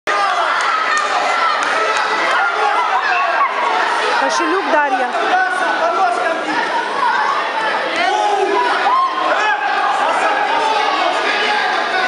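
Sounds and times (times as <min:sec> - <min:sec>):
spectators shouting: 0:00.1 - 0:12.0.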